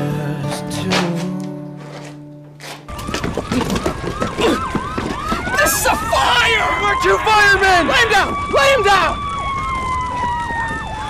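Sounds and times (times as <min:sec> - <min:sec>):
siren wailing: 0:02.9 - 0:11.0
siren yelping: 0:02.9 - 0:11.0.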